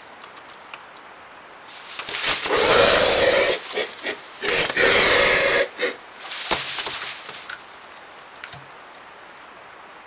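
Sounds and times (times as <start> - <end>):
vulture chick raspy hissing grunts: 2.4 - 6.0.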